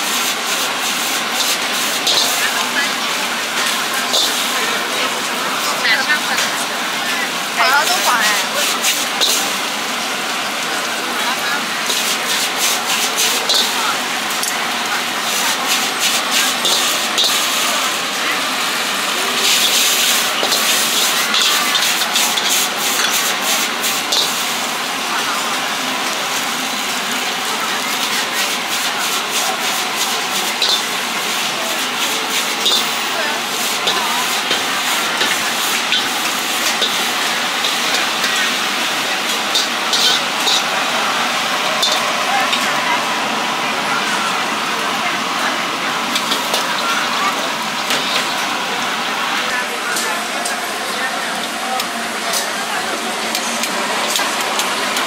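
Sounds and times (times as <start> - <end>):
ladle scraping metal wok: 0.0 - 10.4, 11.1 - 43.2, 46.1 - 49.1
wok sizzling: 0.0 - 55.0
gas burner hiss: 10.8 - 42.7.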